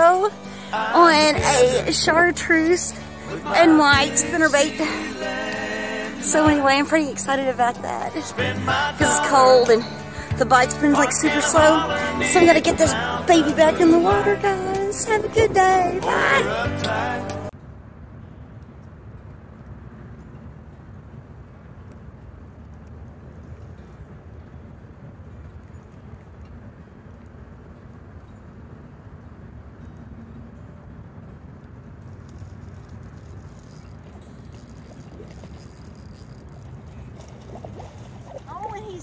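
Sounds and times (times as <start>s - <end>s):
low rumbling outdoor noise: 0.0s - 39.0s
faint light crackles: 18.5s - 30.0s, 31.3s - 39.0s.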